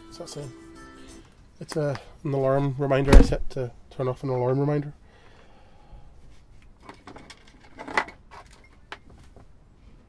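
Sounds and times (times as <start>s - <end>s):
small parts clicking and rustling: 6.6s - 9.4s.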